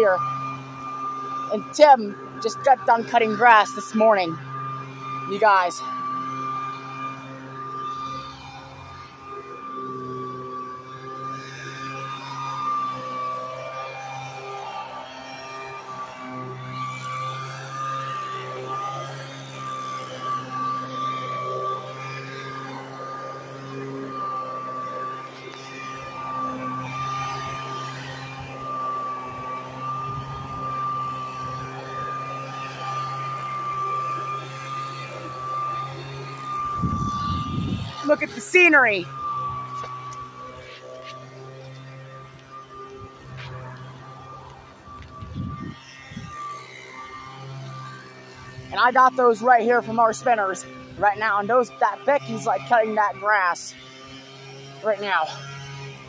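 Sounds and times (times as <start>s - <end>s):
leaf blower running: 0.0s - 56.0s.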